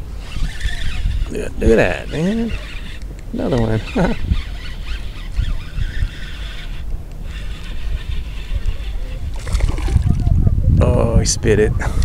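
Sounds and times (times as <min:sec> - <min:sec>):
fish splashing at water surface: 0:09.4 - 0:10.2.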